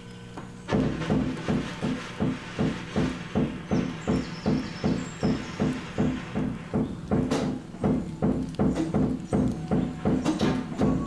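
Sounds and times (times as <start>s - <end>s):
drums struck with sticks: 0.7s - 11.0s.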